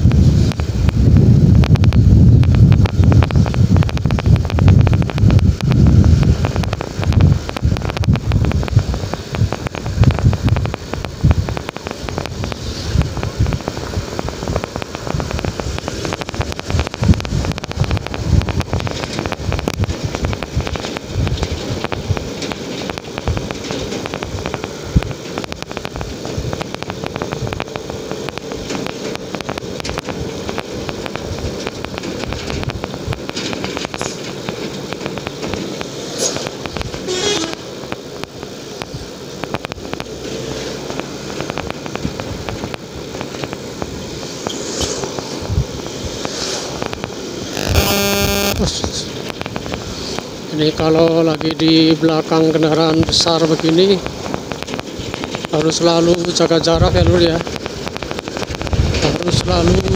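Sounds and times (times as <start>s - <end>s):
motorcycle engine running: 0.0s - 22.3s
wind buffeting microphone: 0.0s - 40.2s, 40.8s - 47.6s, 52.8s - 59.9s
horn blast: 37.0s - 37.7s, 47.5s - 49.0s.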